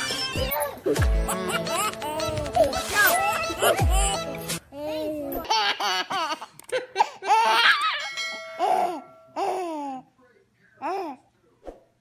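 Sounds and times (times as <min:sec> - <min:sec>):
baby laughing: 0:00.0 - 0:10.1.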